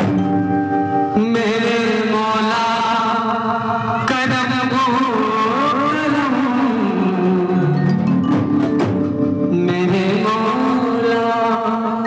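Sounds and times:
drumming: 0.0s - 1.0s, 5.5s - 11.0s.

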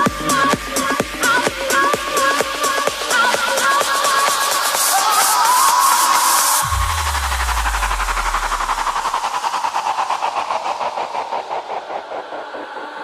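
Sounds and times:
rapid pulsing noise sweep: 0.0s - 13.0s
deep bass boom falling in pitch: 6.6s - 9.6s.

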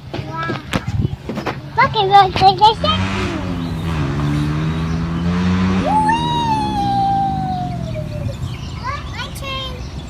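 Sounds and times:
child's high drawn-out call: 5.8s - 9.0s.

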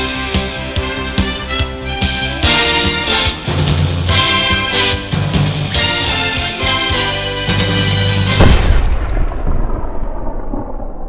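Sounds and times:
explosion rumble: 7.8s - 11.0s.

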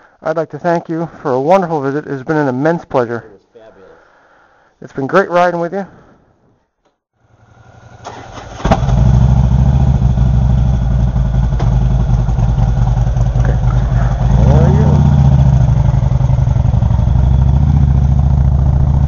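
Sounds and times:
motorcycle engine starting and revving: 7.2s - 19.0s.

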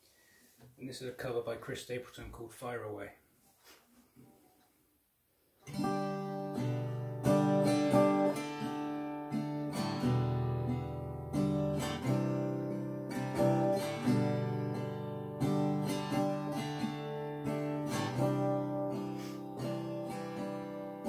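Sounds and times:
acoustic guitar strummed chords: 5.6s - 21.0s.

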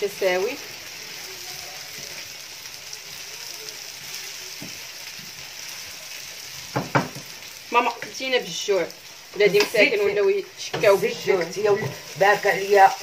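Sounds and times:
woman's voice: 0.0s - 0.6s, 7.7s - 13.0s
food sizzling in oil: 0.0s - 13.0s.

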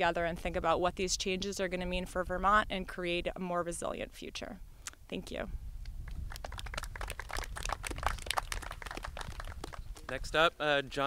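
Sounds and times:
small group applauding: 6.1s - 10.4s.

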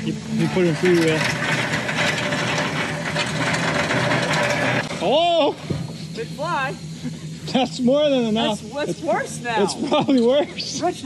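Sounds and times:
truck engine running: 0.0s - 9.8s
mechanical rattle and grind: 0.0s - 11.0s.

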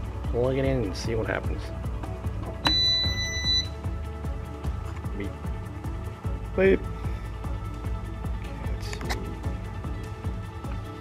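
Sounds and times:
background music with steady beat: 0.0s - 11.0s
high electronic beep: 2.6s - 3.8s.

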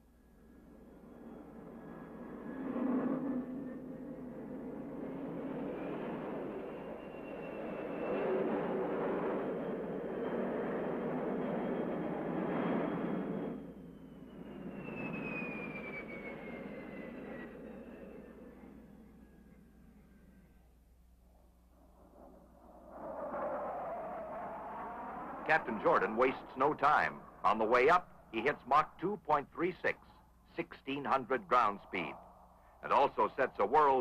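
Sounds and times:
jet engine roaring and whining: 0.3s - 20.7s, 21.3s - 34.0s.

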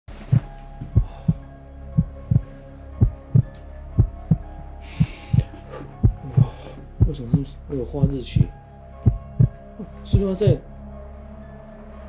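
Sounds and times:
heartbeat thumps: 0.1s - 10.5s
low drone: 0.1s - 12.0s.

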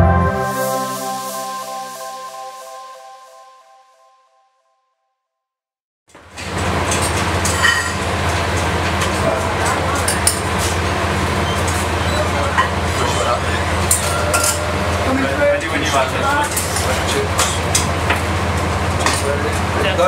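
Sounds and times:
plates and utensils clinking: 6.9s - 8.5s, 13.9s - 14.8s.

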